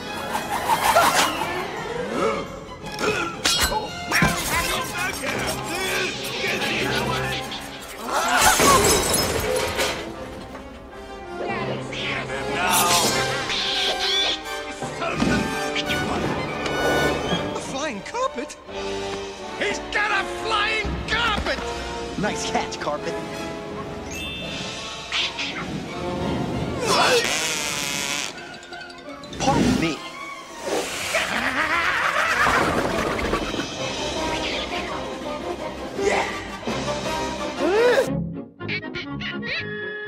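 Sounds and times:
orchestral cartoon music: 0.0s - 40.0s.

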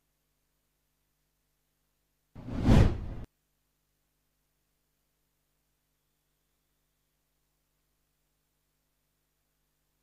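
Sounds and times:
whoosh transition effect: 2.4s - 3.3s.

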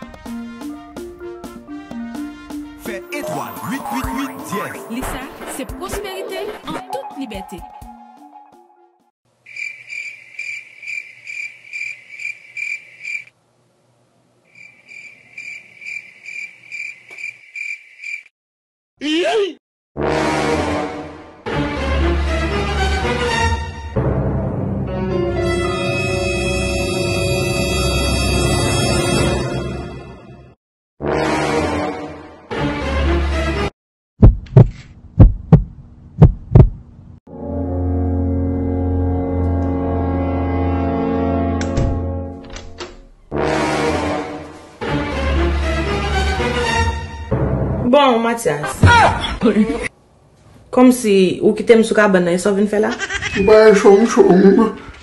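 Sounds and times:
cricket chirping: 9.4s - 13.3s, 14.5s - 18.3s
heavy thumps: 34.2s - 36.9s.

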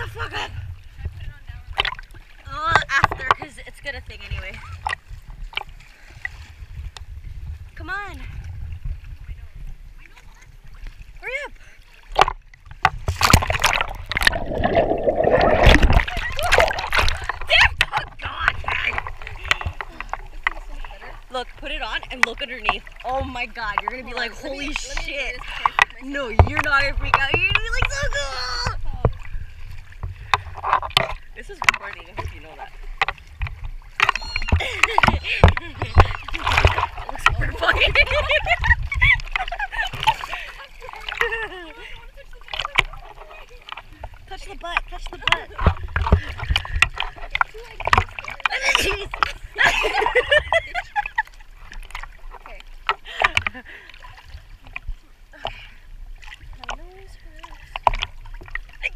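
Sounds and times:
seawater splashing against camera: 0.0s - 7.2s, 8.4s - 58.9s
water sloshing: 0.0s - 58.9s
rushing bubbling water underwater: 12.0s - 58.9s
person splashing into water: 13.0s - 17.9s.

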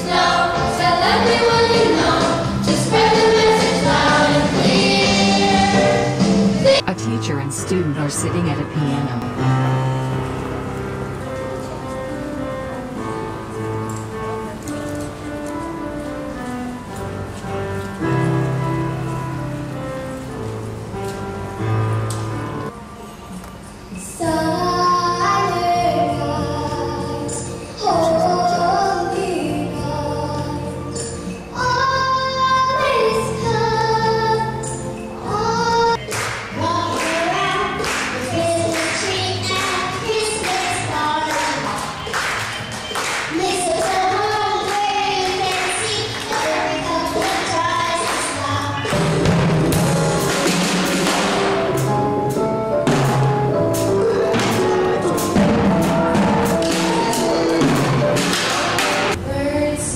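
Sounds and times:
instrumental accompaniment: 0.0s - 59.2s
girl singing into a microphone: 24.0s - 41.8s, 43.3s - 48.9s, 59.2s - 59.9s
drum kit played with sticks: 48.8s - 59.2s.

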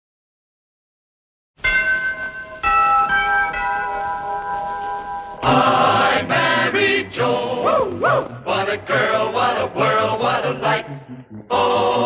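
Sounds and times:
sitcom theme music with chorus: 4.6s - 12.0s.

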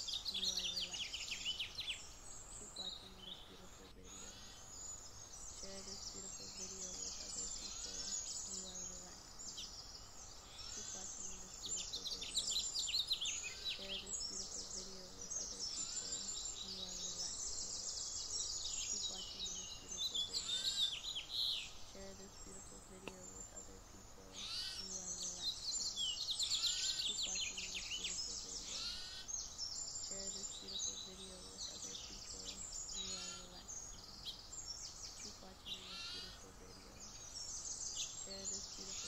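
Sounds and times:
songbirds chirping and trilling: 0.0s - 39.0s.

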